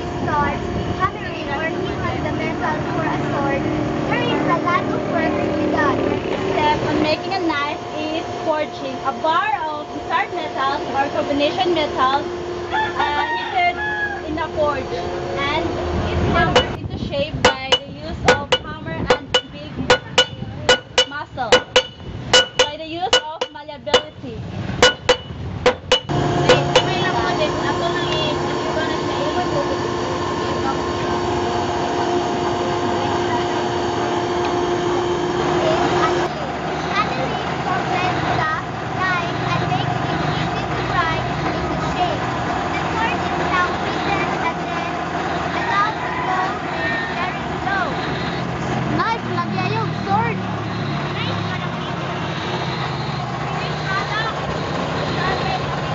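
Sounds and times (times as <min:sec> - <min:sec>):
steady hum with rushing noise: 0:00.0 - 0:51.3
voices: 0:00.0 - 0:55.9
hammer striking steel: 0:16.5 - 0:16.8, 0:17.4 - 0:24.2, 0:24.8 - 0:27.0.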